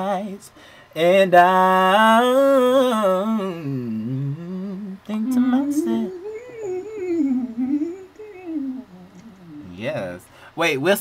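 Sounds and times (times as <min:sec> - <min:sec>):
man humming a melody: 0:01.4 - 0:10.0.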